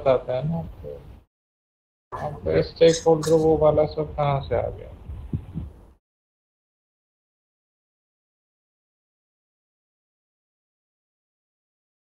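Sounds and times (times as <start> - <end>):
soft thumps on microphone: 5.1 - 5.8.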